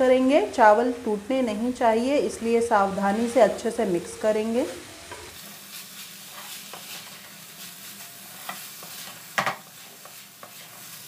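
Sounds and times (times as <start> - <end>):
low sizzle: 0.0 - 11.0
spatula scraping wok: 2.8 - 11.0
spatula clatter: 5.7 - 11.0.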